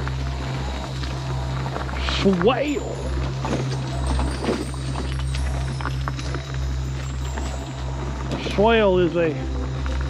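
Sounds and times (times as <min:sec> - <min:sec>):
scooter motor hum: 0:00.0 - 0:10.0
tyres crackling over leaves: 0:00.0 - 0:10.0.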